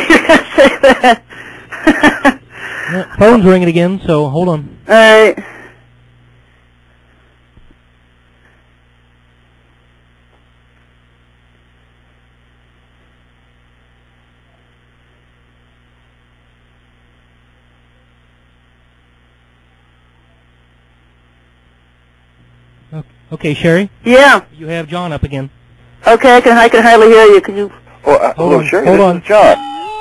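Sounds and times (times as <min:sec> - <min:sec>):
faint mains hum with hiss: 0:00.0 - 0:30.0.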